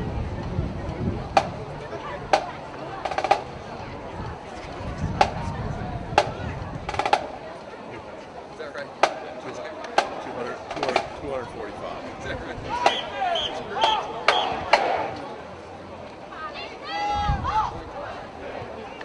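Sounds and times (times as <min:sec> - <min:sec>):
crowd chattering: 0:00.0 - 0:19.0
marching percussion clicks: 0:02.3 - 0:03.5, 0:09.0 - 0:11.2.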